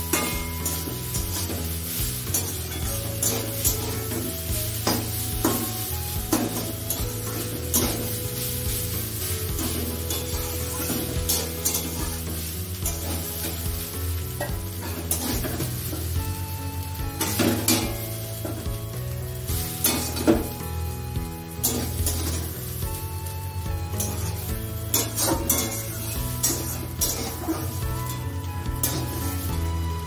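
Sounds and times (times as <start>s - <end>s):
metal spatula scraping pan: 0.0s - 8.6s, 9.5s - 13.7s, 14.4s - 16.0s, 24.0s - 29.5s
frying sizzle: 0.0s - 30.0s.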